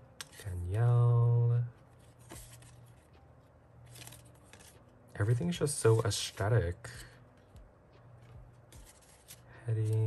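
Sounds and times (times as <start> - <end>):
low room hum: 0.0 - 10.0
cards rustling: 0.2 - 1.0, 1.9 - 3.2, 3.8 - 7.5, 8.2 - 10.0
card sliding across cards: 2.0 - 3.0, 8.7 - 10.0.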